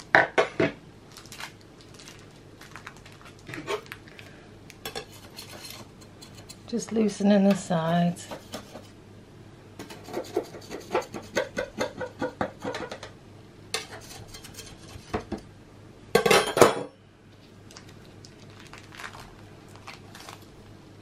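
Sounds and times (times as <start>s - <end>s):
knife scraping metal tray: 4.9s - 6.6s, 7.5s - 9.0s, 9.8s - 12.0s, 13.8s - 15.2s.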